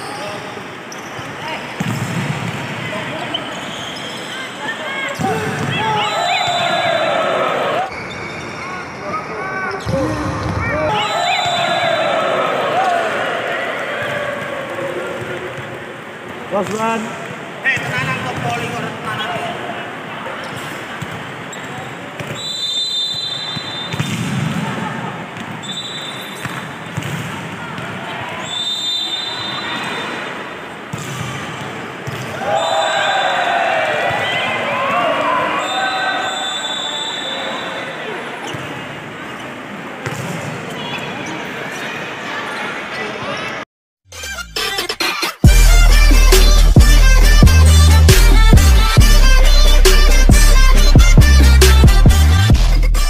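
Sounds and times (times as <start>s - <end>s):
volleyball struck and bouncing: 1.8s - 2.8s, 23.6s - 24.7s, 26.4s - 28.0s, 30.9s - 32.4s
players shouting: 2.7s - 8.0s, 9.1s - 17.0s, 31.4s - 38.5s.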